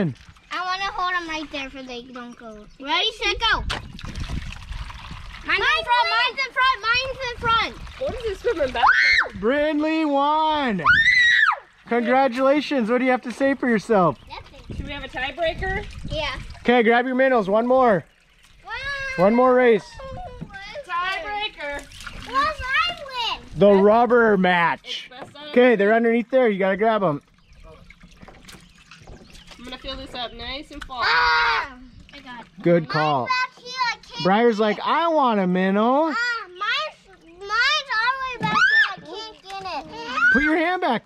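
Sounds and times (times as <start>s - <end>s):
young children's voices: 0.5s - 3.7s, 5.4s - 9.3s, 14.2s - 15.0s, 15.6s - 16.6s, 18.6s - 23.8s, 30.8s - 34.9s, 36.0s - 40.6s
high voices talking: 29.6s - 41.0s.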